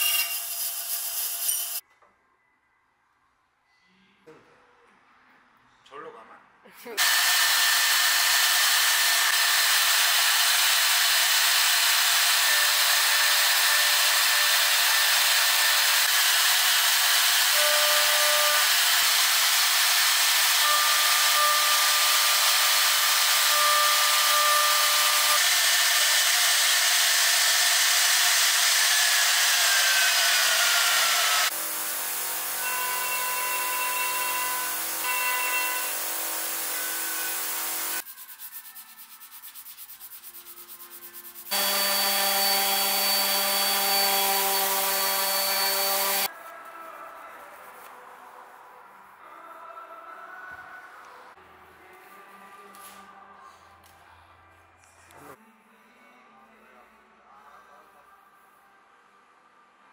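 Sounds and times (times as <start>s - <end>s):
orbital sander running: 7.0s - 17.5s, 41.5s - 46.3s
router milling wood with whine: 7.0s - 38.0s, 41.5s - 46.3s.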